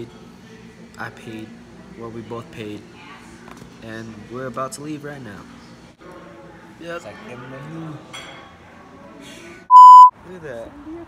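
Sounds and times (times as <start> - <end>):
faint restaurant background: 0.0 - 11.0
loud reference tone beep: 9.7 - 10.1.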